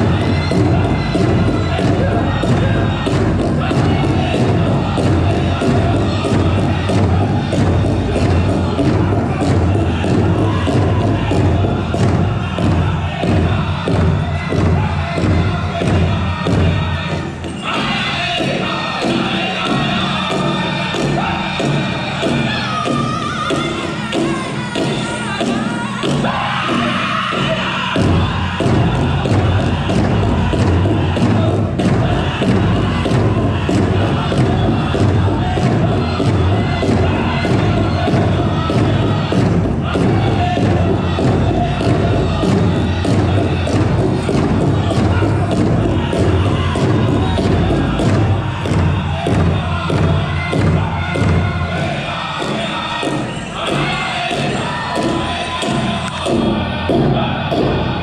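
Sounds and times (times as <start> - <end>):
big drum fast beat: 0.0 - 58.0
crowd cheering and whooping: 0.0 - 58.0
people singing: 0.0 - 58.0.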